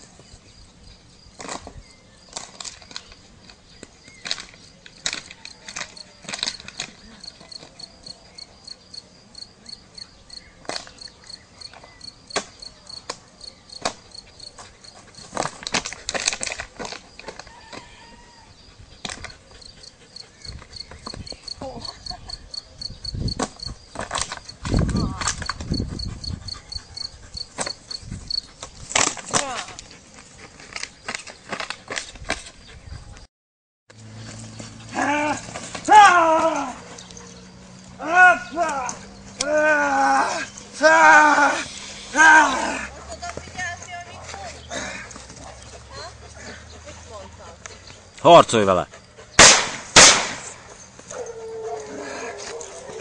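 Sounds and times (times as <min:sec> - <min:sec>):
insect chirping: 0:00.0 - 0:16.0, 0:18.4 - 0:28.9.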